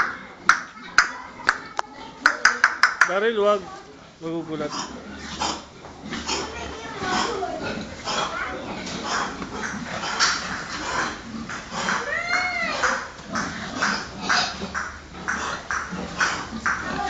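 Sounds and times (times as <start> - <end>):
pigs grunting: 4.6 - 17.0
pig squealing: 4.7 - 17.0.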